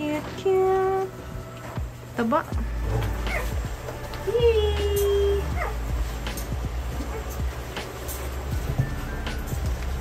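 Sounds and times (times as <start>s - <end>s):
puppies whining: 2.7s - 9.6s.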